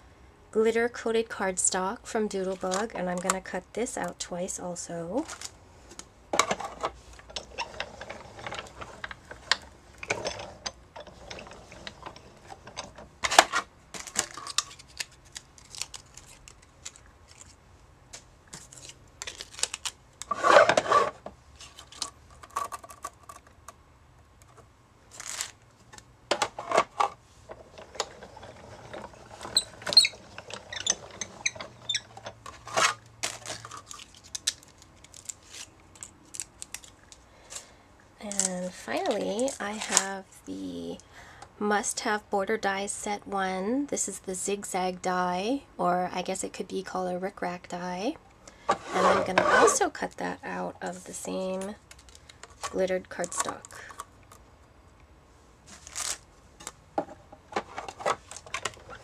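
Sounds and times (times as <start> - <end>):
scraping: 5.3 - 17.6, 18.5 - 23.4, 24.5 - 36.9, 48.6 - 50.0.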